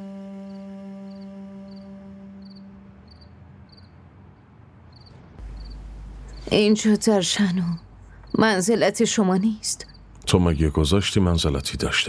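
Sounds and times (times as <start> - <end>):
held note of score music: 0.0 - 3.2, 5.4 - 6.6
cricket chirping: 0.5 - 4.0, 4.9 - 11.2.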